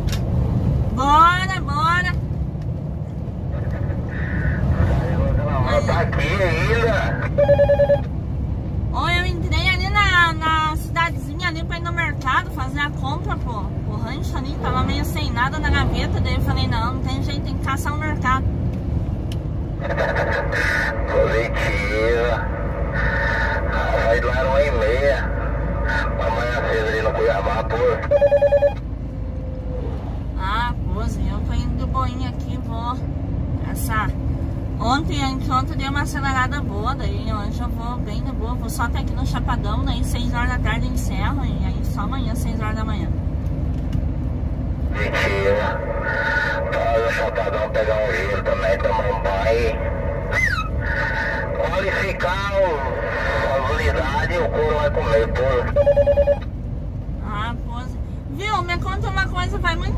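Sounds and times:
diesel engine drone: 0.0s - 59.9s
voices over two-way radio: 3.4s - 8.2s, 19.7s - 29.0s, 44.8s - 56.6s
pulsed electronic beep: 7.4s - 8.0s, 28.1s - 28.8s.

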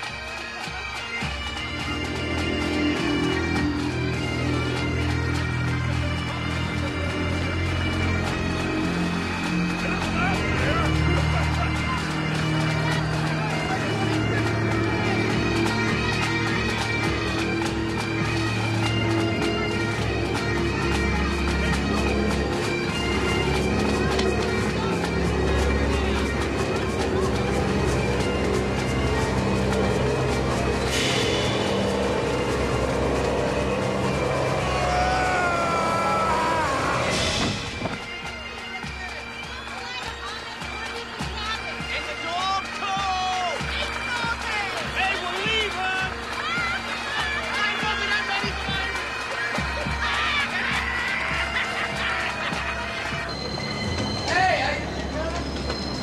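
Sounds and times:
dramatic droning music: 0.9s - 56.0s.

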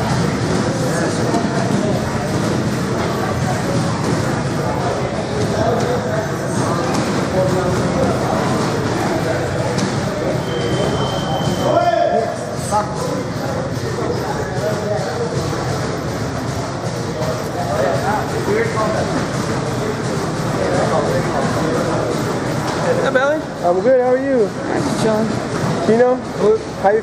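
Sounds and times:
indistinct chatter of voices: 0.0s - 27.0s.

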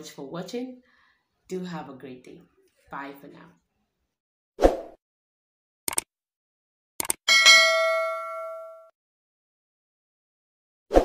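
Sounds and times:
bright bell ding: 7.3s - 8.9s.

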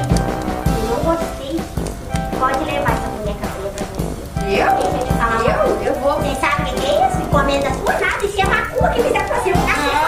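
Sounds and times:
music with steady beat: 0.0s - 10.0s
high-pitched childlike voices: 2.4s - 10.0s.

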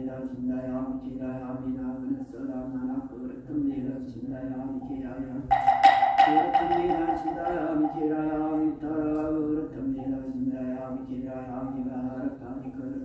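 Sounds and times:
monk chanting: 0.0s - 13.0s.

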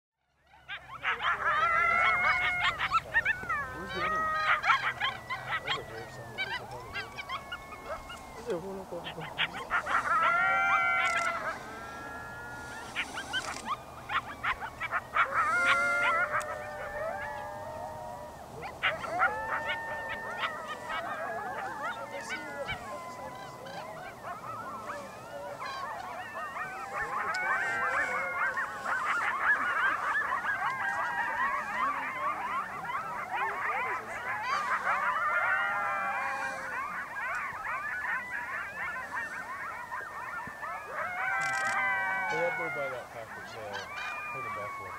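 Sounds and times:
coyotes howling: 0.3s - 44.9s
coyote yips: 0.5s - 17.5s, 18.6s - 44.9s.

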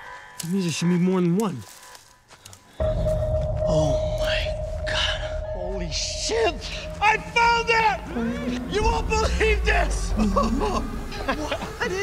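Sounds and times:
loud low rumble: 2.8s - 11.9s
steady eerie tone: 2.8s - 12.0s.

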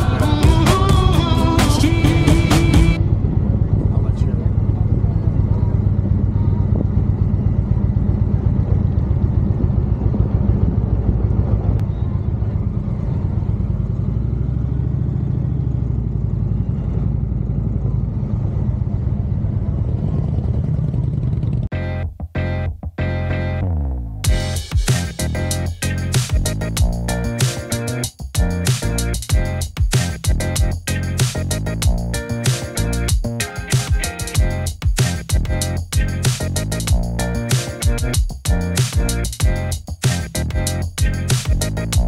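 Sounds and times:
music track: 0.0s - 3.0s, 21.7s - 42.0s
motorcycle engine running: 0.0s - 21.7s.

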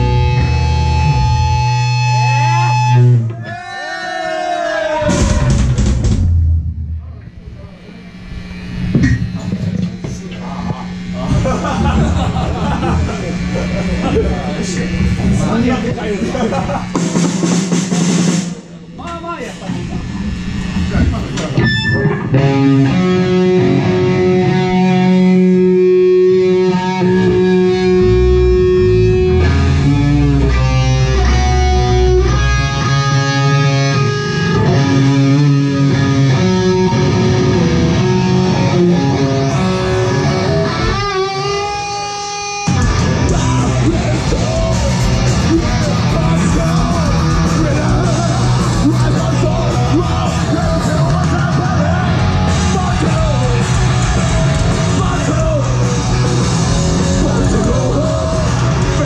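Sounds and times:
rock band with drums: 0.0s - 7.3s, 8.1s - 59.0s
electric guitars and bass: 0.0s - 59.0s.

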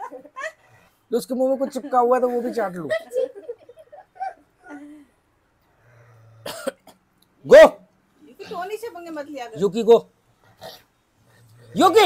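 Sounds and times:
person coughing: 6.5s - 7.0s.

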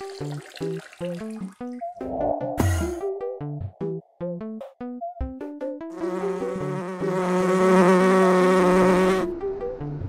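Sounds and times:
plinky synth melody: 1.6s - 3.7s
insect-like buzzing: 6.0s - 9.3s.

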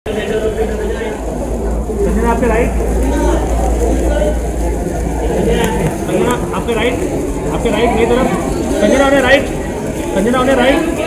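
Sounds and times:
indistinct chatter of voices: 0.1s - 11.0s.

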